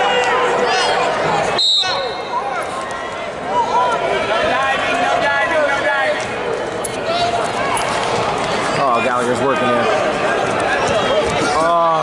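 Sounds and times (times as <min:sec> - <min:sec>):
crowd talking and shouting: 0:00.0 - 0:12.0
referee's whistle blast: 0:01.6 - 0:02.4.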